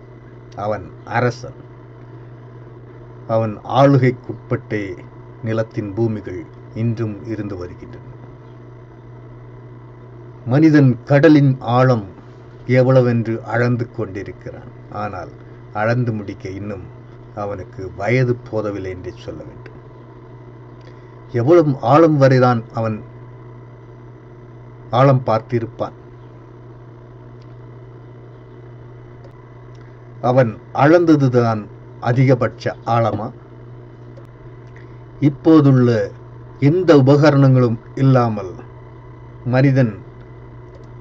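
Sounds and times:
low hum: 0:00.0 - 0:41.0
faint ticks: 0:29.2 - 0:29.9.

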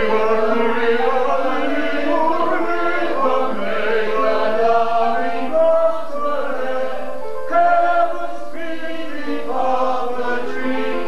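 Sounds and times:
operetta voices singing: 0:00.0 - 0:11.0.

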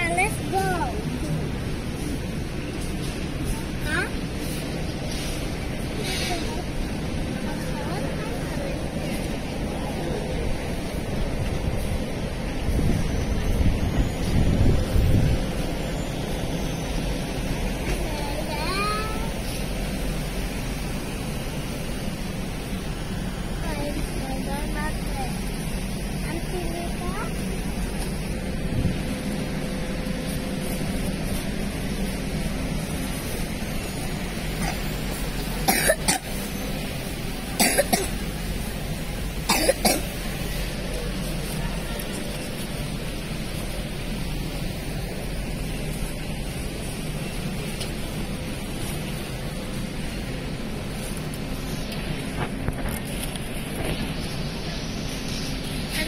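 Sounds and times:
faint indistinct voices: 0:00.0 - 0:56.0
supermarket background noise: 0:00.0 - 0:56.0.

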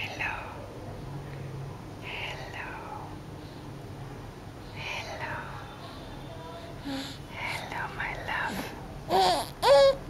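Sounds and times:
faint steady hum: 0:00.0 - 0:10.0
person whispering: 0:02.0 - 0:03.1, 0:04.8 - 0:05.7, 0:06.6 - 0:08.8.

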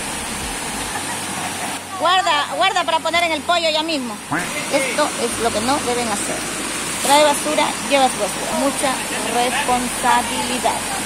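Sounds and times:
small waterfall rushing: 0:00.0 - 0:11.0.

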